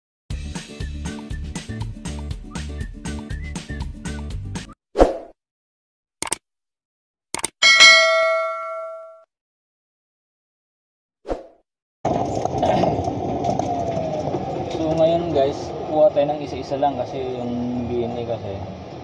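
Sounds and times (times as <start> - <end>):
music: 0.3 - 4.8
bell ding: 7.6 - 9.2.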